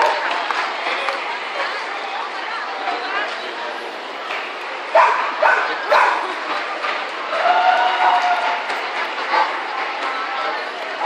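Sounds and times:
dog barking: 0:04.9 - 0:06.2.

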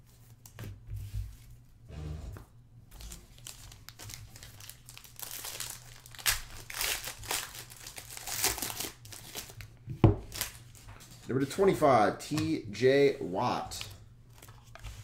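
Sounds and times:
foil wrapper crinkling and tearing: 0:02.9 - 0:10.9.

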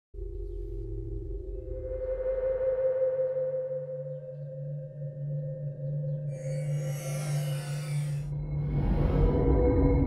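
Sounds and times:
low wavering hum: 0:00.2 - 0:08.6
sustained ringing tone: 0:06.2 - 0:08.3.

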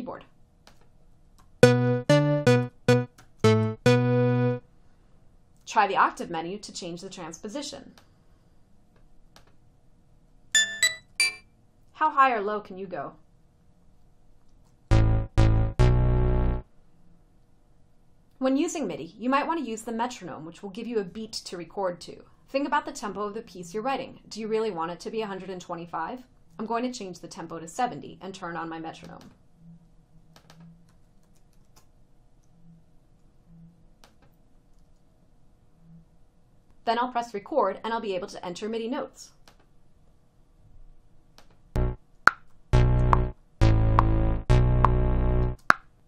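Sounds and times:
high-pitched synth notes: 0:01.6 - 0:04.6, 0:10.6 - 0:11.4, 0:14.9 - 0:16.6, 0:41.8 - 0:42.0, 0:42.7 - 0:45.6
computer keyboard keys clicking: 0:30.4 - 0:31.9.

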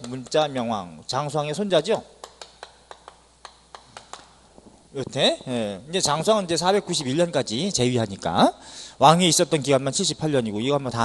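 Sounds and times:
chalk tapping on blackboard: 0:00.0 - 0:00.5, 0:02.2 - 0:04.8.

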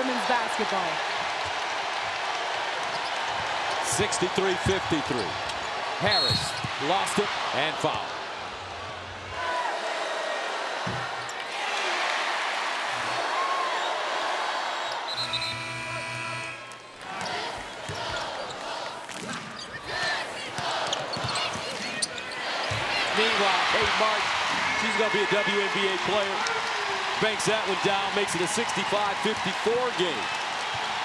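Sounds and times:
crowd noise: 0:00.0 - 0:31.0
sneakers squeaking on hardwood: 0:05.5 - 0:06.8, 0:20.6 - 0:23.0
horn-like tone: 0:15.1 - 0:16.8.

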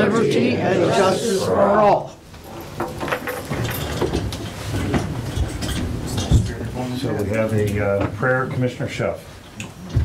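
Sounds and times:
office chairs rumbling: 0:02.4 - 0:07.1.

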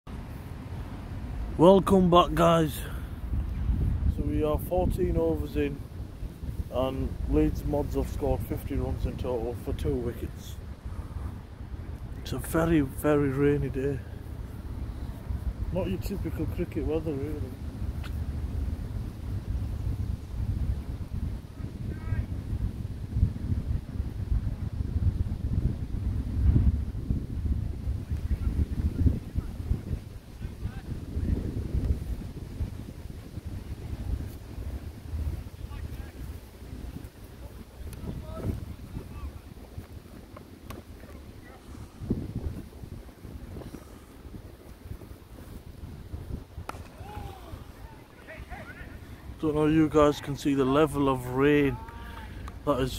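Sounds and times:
wind buffeting microphone: 0:00.1 - 0:52.9.

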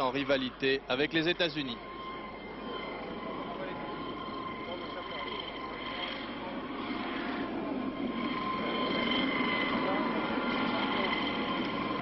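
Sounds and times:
helicopter turbine whine: 0:00.0 - 0:12.0.

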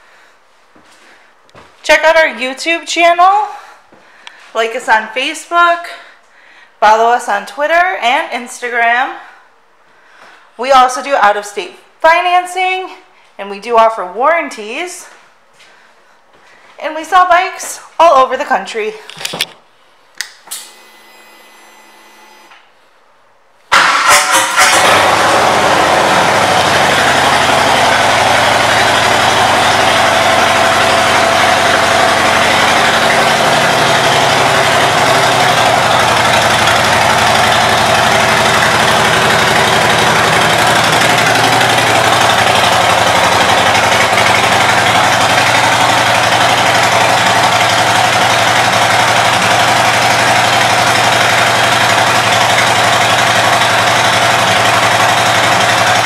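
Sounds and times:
motorcycle engine idling loudly: 0:23.8 - 0:56.0.

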